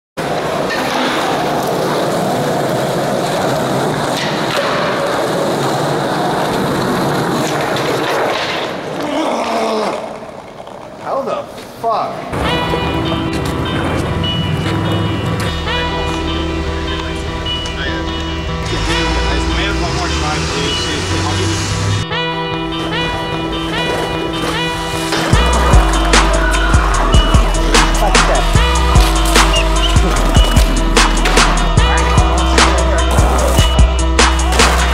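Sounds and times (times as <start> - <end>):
skateboard wheels rolling on concrete: 0.2 - 34.9
indistinct voices: 12.2 - 22.0, 23.2 - 34.9.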